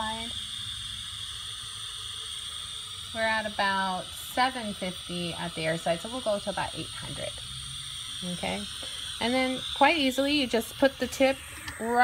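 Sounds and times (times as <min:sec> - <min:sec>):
hot air station hissing: 0:00.0 - 0:12.0.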